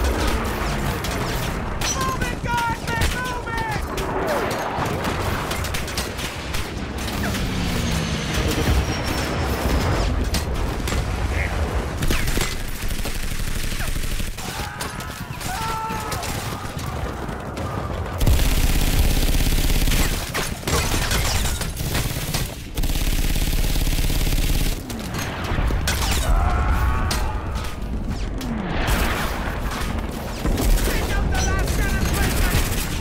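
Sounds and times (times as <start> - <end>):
rapid gunfire: 0.0 - 9.9, 11.8 - 26.4, 27.2 - 33.0
people shouting: 14.4 - 18.2, 26.2 - 28.0.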